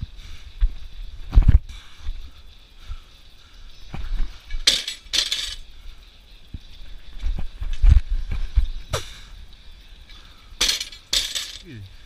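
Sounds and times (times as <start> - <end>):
barbell plates clinking: 4.6 - 5.7, 10.6 - 11.8.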